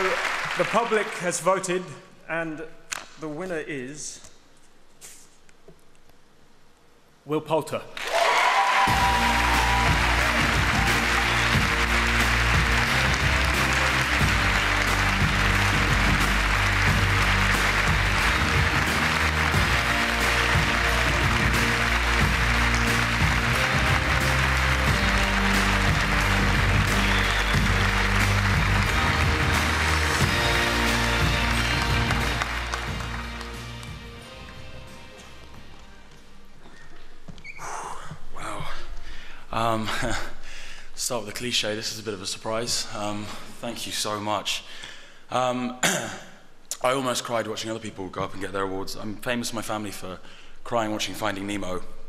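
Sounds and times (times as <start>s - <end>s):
audience applauding: 0.0s - 1.7s, 8.0s - 34.6s
loud music with bass line: 8.9s - 33.8s.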